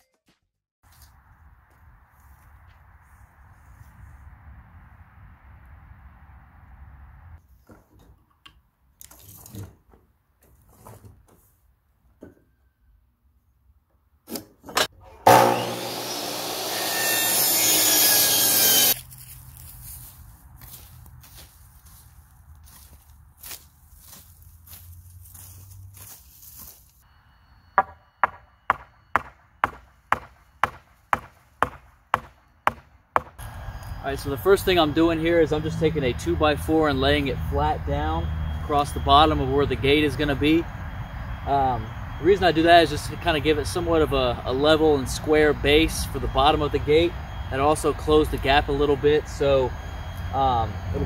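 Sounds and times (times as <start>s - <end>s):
power saw cutting wood: 14.8s - 19.0s
lumber and tools knocking: 27.8s - 33.4s.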